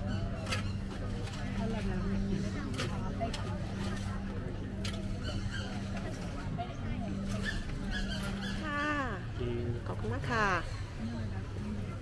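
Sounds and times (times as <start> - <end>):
scattered voices: 0.0 - 12.0.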